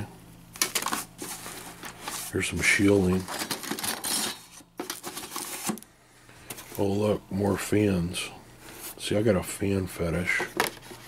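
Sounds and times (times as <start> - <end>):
computer parts clattering in a box: 0.6 - 5.8
rustling scrape: 0.8 - 5.8.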